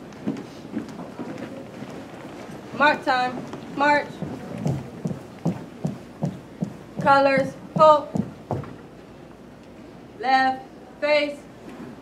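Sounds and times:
marching footsteps in unison: 0:00.2 - 0:08.9.

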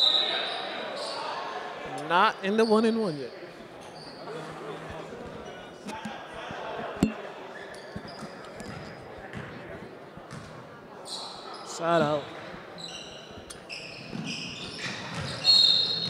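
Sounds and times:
echoing voices in a hall: 0:00.0 - 0:16.0
sneaker squeaks on hardwood: 0:07.0 - 0:09.6, 0:12.8 - 0:16.0.

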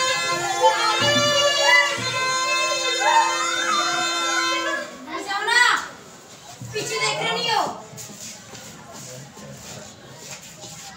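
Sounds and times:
reedy wind instrument melody: 0:00.0 - 0:05.1
voices of people and children: 0:00.0 - 0:10.9.

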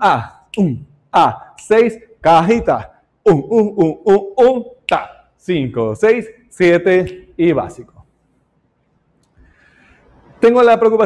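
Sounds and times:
faint hiss: 0:08.8 - 0:11.0.

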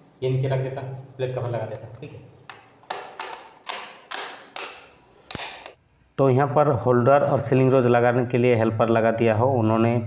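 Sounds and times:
sharp plastic clicks: 0:02.5 - 0:05.8.

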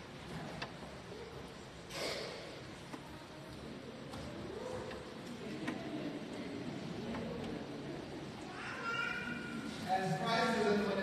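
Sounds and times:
congregation chatter: 0:00.0 - 0:11.0.

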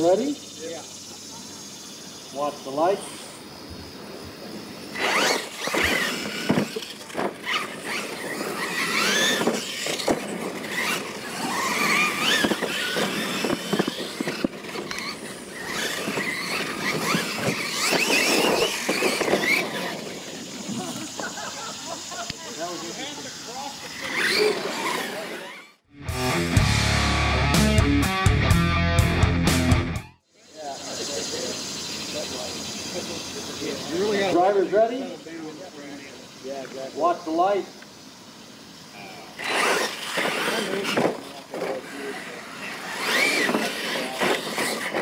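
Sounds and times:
electric motor and gear whine: 0:02.4 - 0:21.3, 0:39.0 - 0:45.0
loud music with heavy beat: 0:26.0 - 0:30.0.

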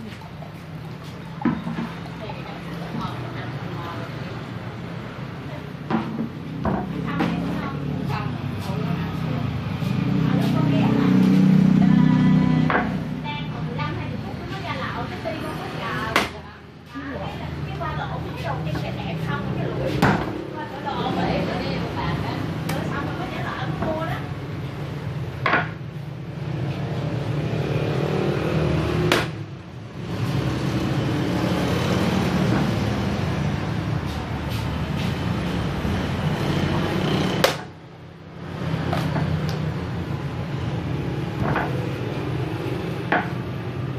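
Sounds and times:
machete chopping coconut: 0:16.1 - 0:16.4, 0:19.9 - 0:20.4, 0:25.5 - 0:25.8, 0:28.9 - 0:29.5, 0:37.3 - 0:37.8
machete knocking on wooden block: 0:25.4 - 0:25.8.

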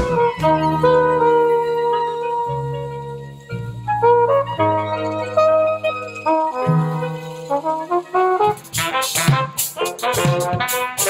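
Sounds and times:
bass line: 0:00.0 - 0:11.0
wind instrument melody: 0:00.0 - 0:11.0.

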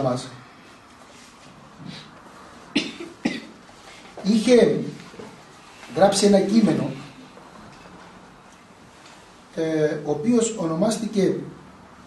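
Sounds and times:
person coughing: 0:02.7 - 0:03.6.

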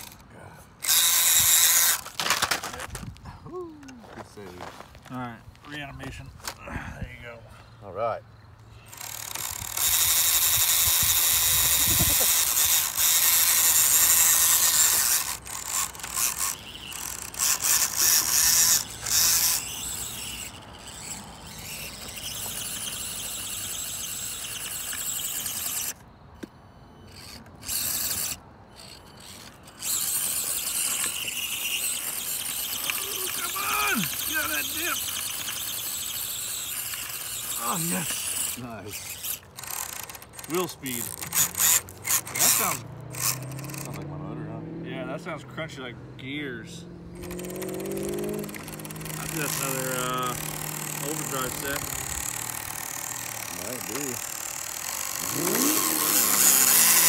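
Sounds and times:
gears crunching and ratcheting: 0:00.0 - 0:03.2, 0:08.8 - 0:26.1, 0:27.0 - 0:44.1, 0:47.2 - 0:57.0
small electric motors whining: 0:00.0 - 0:03.2, 0:03.8 - 0:57.0.

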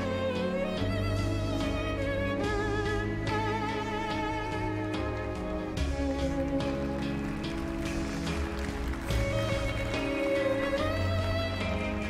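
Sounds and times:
music with sustained chords: 0:00.0 - 0:12.0.

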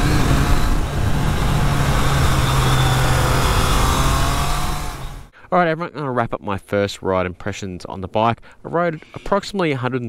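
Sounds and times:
heavy wind noise: 0:00.0 - 0:05.3
motorcycle engine cruising: 0:00.0 - 0:05.3.

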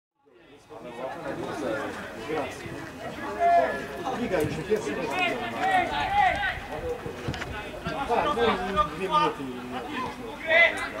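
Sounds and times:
murmur of overlapping voices: 0:00.2 - 0:11.0.

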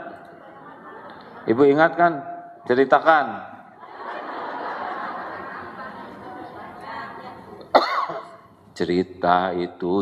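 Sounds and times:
murmur of voices: 0:03.6 - 0:08.6
man coughing: 0:07.7 - 0:08.4.

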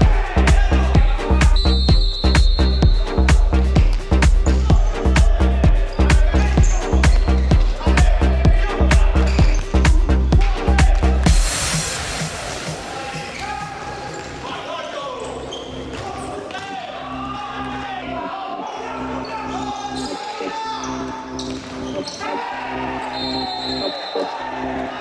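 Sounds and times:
players calling out: 0:04.4 - 0:11.3.

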